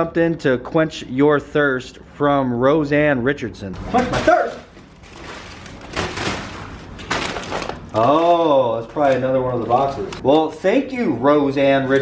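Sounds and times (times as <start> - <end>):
plastic shrink-wrap crinkling: 4.0 - 10.2.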